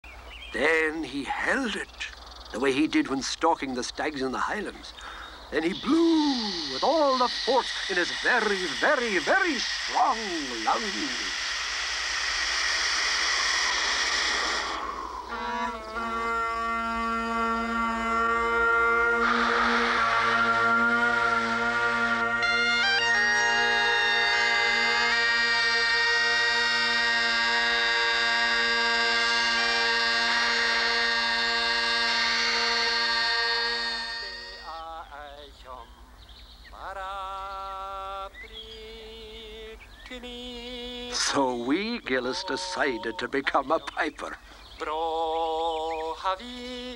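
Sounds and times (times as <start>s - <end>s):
bagpipes playing: 5.0s - 34.8s, 41.2s - 43.6s
rush of air into bag: 11.3s - 15.3s.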